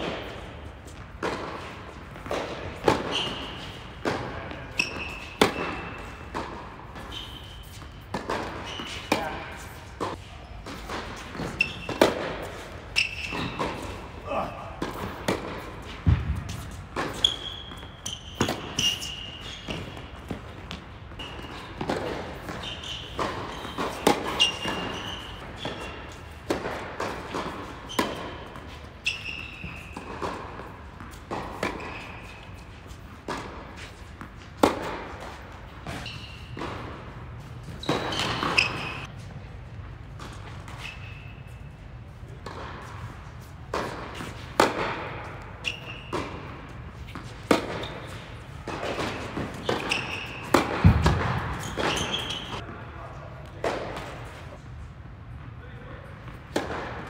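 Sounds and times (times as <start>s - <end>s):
tennis ball bouncing: 0.0s - 14.1s, 14.8s - 39.0s, 42.4s - 52.6s, 56.3s - 56.9s
racket striking tennis ball: 0.0s - 39.1s, 42.4s - 52.6s, 56.3s - 57.0s
shoes squeaking on court: 0.0s - 57.0s.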